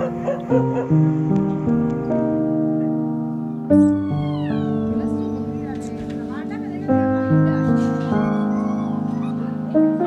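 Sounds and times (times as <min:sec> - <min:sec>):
background music sustained notes: 0:00.0 - 0:10.0
puppy whining: 0:03.8 - 0:04.9, 0:07.5 - 0:10.0.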